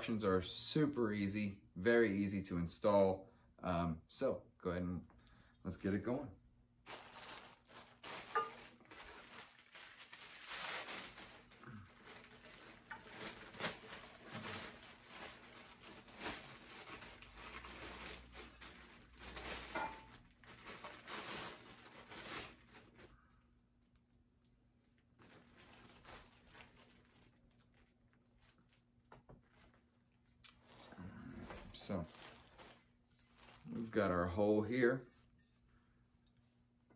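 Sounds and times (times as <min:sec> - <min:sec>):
plastic packaging crinkling: 0:06.8 - 0:23.2, 0:25.0 - 0:34.2.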